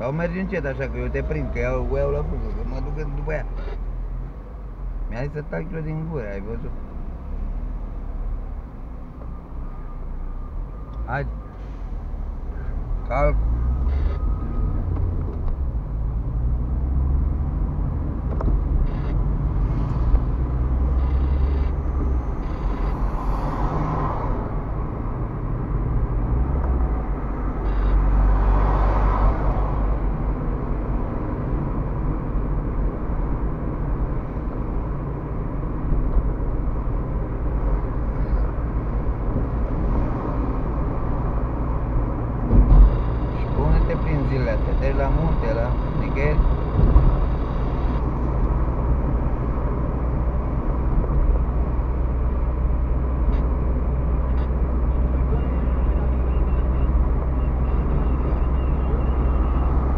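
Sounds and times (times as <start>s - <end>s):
car engine and tyre rumble: 0.0s - 59.9s
thump: 42.5s - 42.9s, 46.7s - 47.3s.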